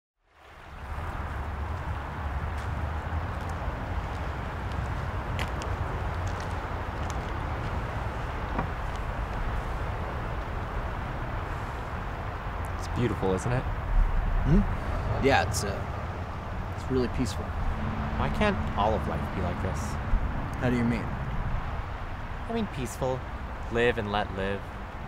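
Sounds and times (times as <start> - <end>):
distant traffic rumble: 0.3 - 25.0.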